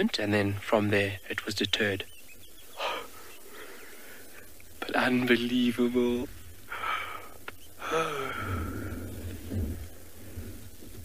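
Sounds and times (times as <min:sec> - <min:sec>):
faint background noise: 0:00.0 - 0:11.0
man breathing: 0:02.8 - 0:04.6, 0:06.6 - 0:10.5.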